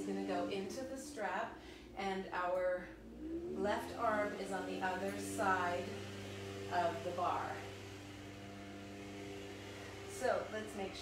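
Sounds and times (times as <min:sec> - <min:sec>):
low machine hum: 0:00.0 - 0:11.0.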